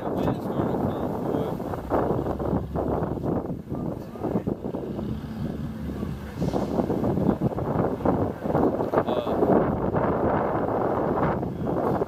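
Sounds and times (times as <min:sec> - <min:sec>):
indistinct voices: 0:00.0 - 0:09.6
traffic: 0:00.0 - 0:12.0
wind buffeting microphone: 0:00.0 - 0:12.0.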